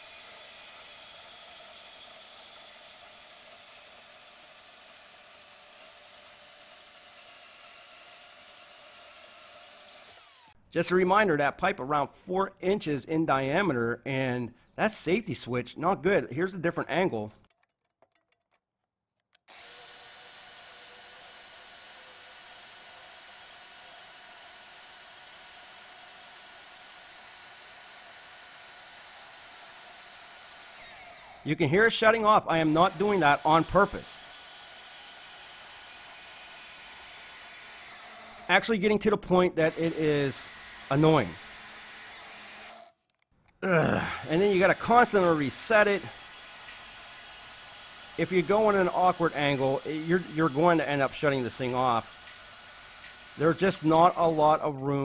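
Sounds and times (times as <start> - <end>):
band saw cutting steel pipe: 0.0 - 10.6, 19.5 - 42.8, 44.3 - 55.0.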